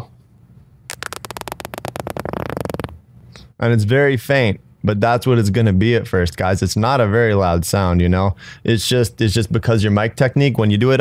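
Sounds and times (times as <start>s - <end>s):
beatbox lip roll: 0.9s - 3.0s.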